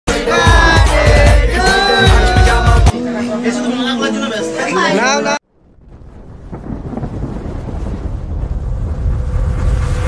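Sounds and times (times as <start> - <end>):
deep thunder-like rumble: 5.6 - 10.0.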